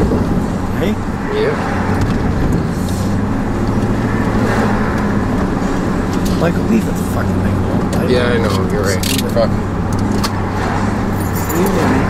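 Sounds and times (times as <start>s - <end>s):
car engine hum: 0.0s - 12.0s
road noise: 0.0s - 12.0s.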